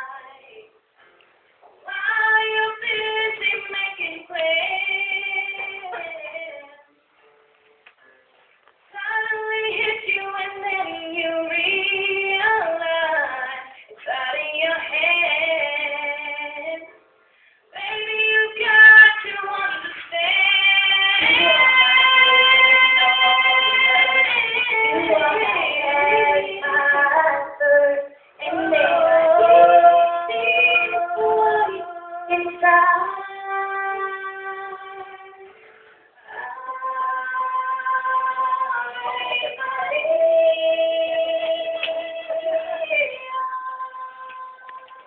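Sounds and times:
acoustic guitar: 0:00.0 - 0:45.0
girls singing: 0:01.8 - 0:06.9, 0:08.9 - 0:16.9, 0:17.8 - 0:35.6, 0:36.2 - 0:45.0.

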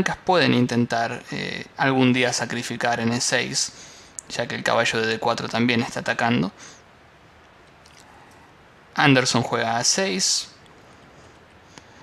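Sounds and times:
faint steady hiss: 0:00.0 - 0:12.0
faint ticks: 0:10.6 - 0:12.0.

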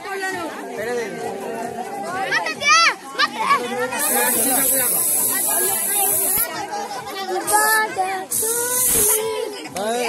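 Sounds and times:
spray can hissing: 0:04.0 - 0:06.5, 0:08.3 - 0:09.3.

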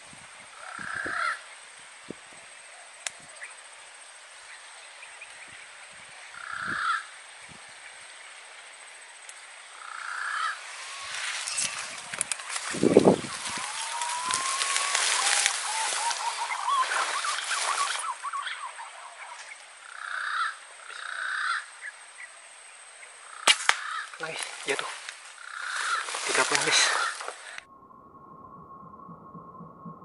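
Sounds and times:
hissy forest background: 0:00.0 - 0:30.0
birds whistled calls: 0:09.8 - 0:21.2.

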